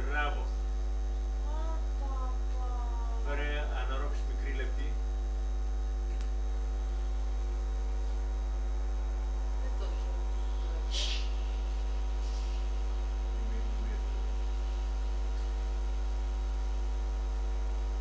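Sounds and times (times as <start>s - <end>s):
electrical mains hum: 0.0s - 18.0s.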